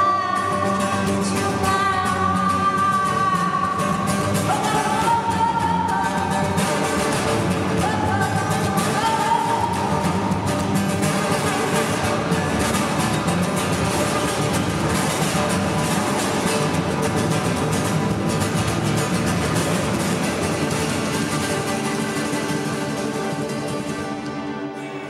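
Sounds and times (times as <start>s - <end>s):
acoustic guitar strumming: 0.0s - 25.0s.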